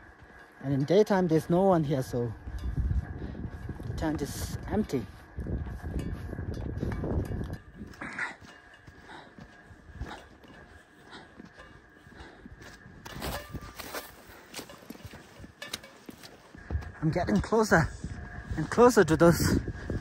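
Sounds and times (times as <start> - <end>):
footsteps on dry ground: 0.0 - 20.0.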